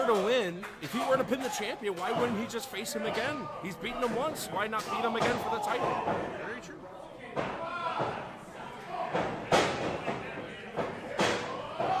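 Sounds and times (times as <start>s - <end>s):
voices in large hall: 0.0s - 12.0s.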